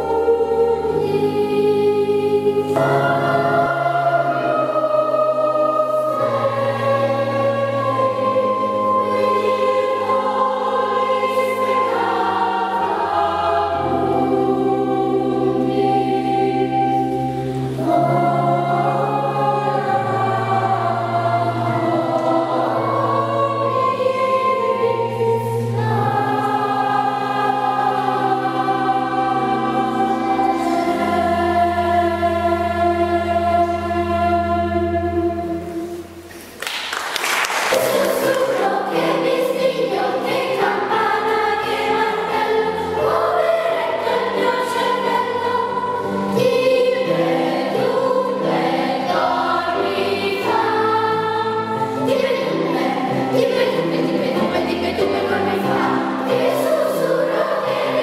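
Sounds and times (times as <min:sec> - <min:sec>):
electric keyboard sustained chords: 0:00.0 - 0:36.3
children's choir singing: 0:00.0 - 0:58.0.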